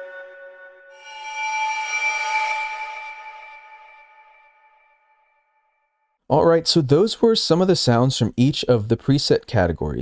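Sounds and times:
eerie synth pad tones: 0.0s - 5.4s.

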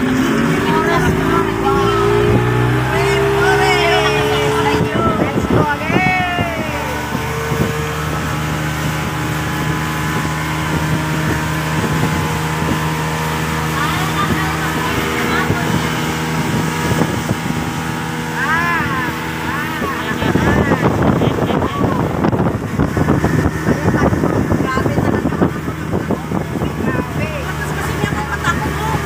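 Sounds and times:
speedboat engine droning: 0.0s - 29.0s
wind rushing: 0.0s - 29.0s.

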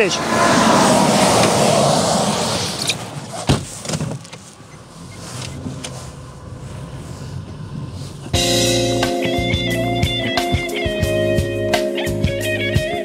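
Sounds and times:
truck passing close by: 0.0s - 3.5s
car engine pulling away: 0.0s - 10.4s
car door shutting: 2.7s - 6.2s.

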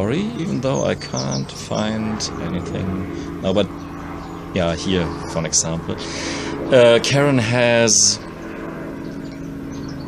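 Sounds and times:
low background hum: 0.0s - 10.0s
faint high bird chirps: 3.7s - 4.5s, 9.0s - 10.0s.

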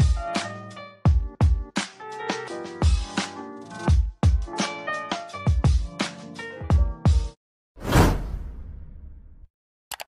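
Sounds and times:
whoosh sound effect: 7.8s - 9.0s.

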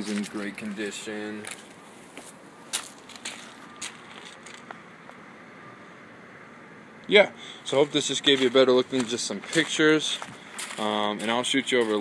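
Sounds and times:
light footsteps: 0.0s - 5.2s, 7.7s - 12.0s
faint outdoor background noise: 0.0s - 12.0s.

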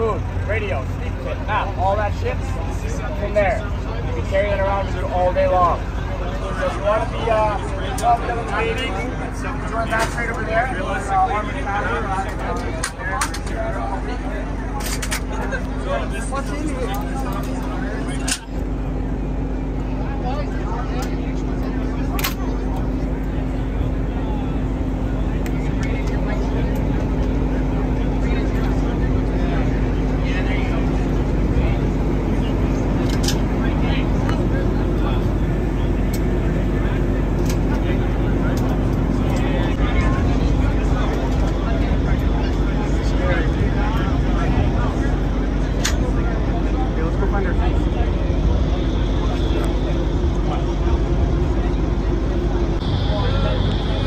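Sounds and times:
low machine hum: 0.0s - 54.0s
people talking indistinctly: 0.0s - 54.0s.

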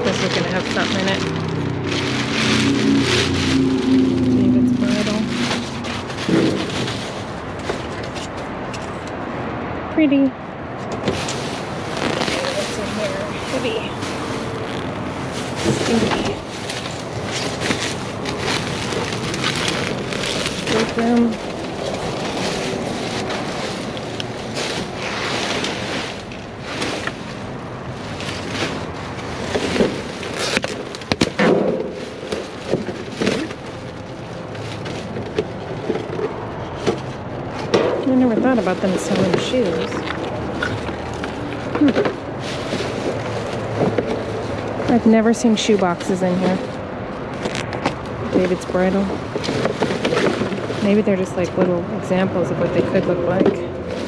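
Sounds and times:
rummaging through trash bags: 0.0s - 8.7s, 10.8s - 54.0s.

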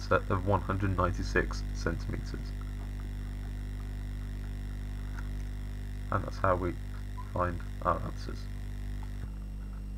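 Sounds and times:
electrical mains hum: 0.0s - 9.9s.

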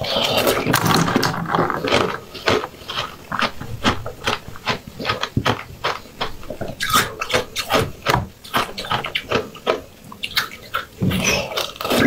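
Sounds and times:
chewing crunchy food: 0.0s - 12.0s.

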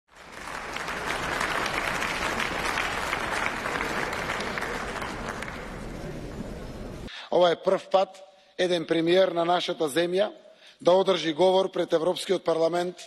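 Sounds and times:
audience applause: 0.1s - 6.8s.

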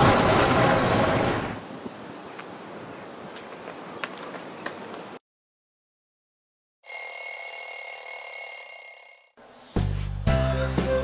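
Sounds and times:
alarm clock ringing: 6.8s - 9.4s.

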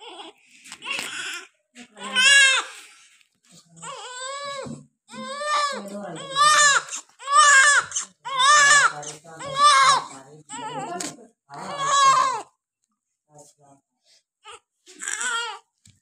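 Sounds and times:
newborn baby crying: 0.0s - 2.9s, 3.8s - 12.5s, 14.4s - 15.7s.

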